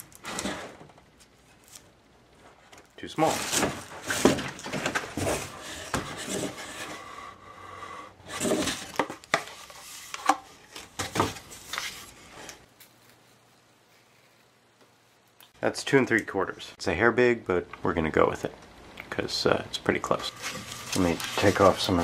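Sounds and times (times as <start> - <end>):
cardboard tubes knocking and scraping: 3.3 - 7.0.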